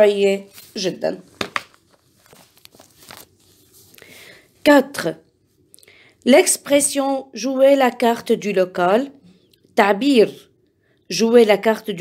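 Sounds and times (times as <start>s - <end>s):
woman's voice: 0.0s - 1.3s, 4.6s - 5.3s, 6.2s - 9.2s, 9.8s - 10.5s, 11.1s - 12.0s.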